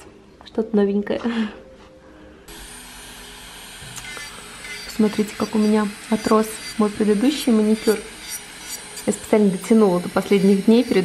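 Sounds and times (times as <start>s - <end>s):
electric nail drill whirring: 2.5s - 11.0s.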